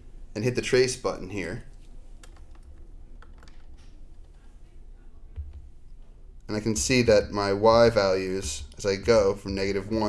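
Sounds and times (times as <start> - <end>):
calculator keys clicking: 2.2 - 4.4.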